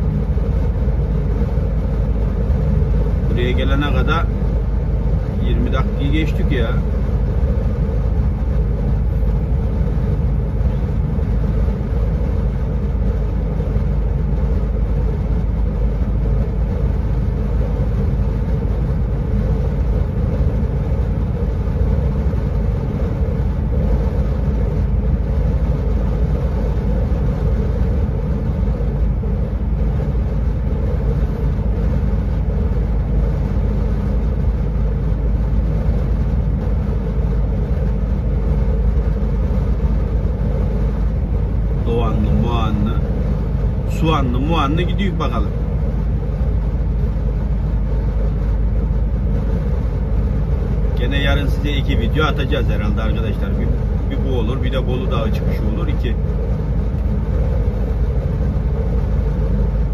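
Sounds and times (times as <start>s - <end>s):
vehicle engine and road drone: 0.0s - 59.9s.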